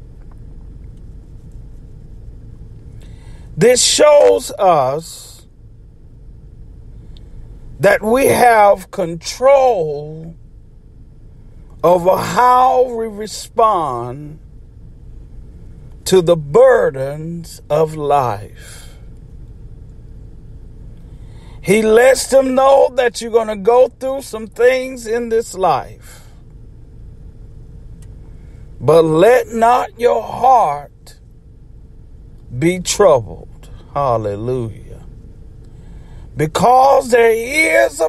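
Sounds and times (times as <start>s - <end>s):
low background rumble: 0.0s - 38.0s.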